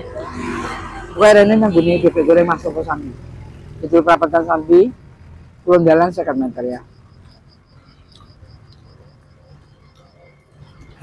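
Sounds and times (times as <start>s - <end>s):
faint insect chirping: 1.4s - 11.0s.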